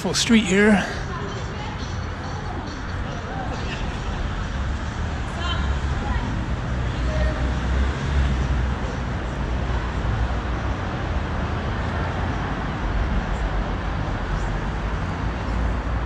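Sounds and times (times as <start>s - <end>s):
road traffic noise: 0.0s - 16.0s.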